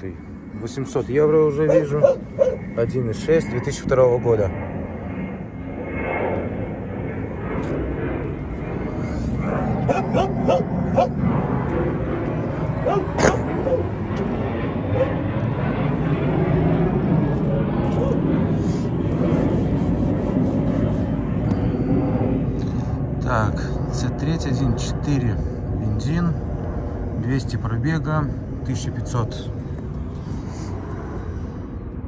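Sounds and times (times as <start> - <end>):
steady low rumble: 0.0 - 32.0
dogs barking and yipping: 1.6 - 2.7, 9.9 - 11.2, 12.8 - 13.9, 14.9 - 15.2.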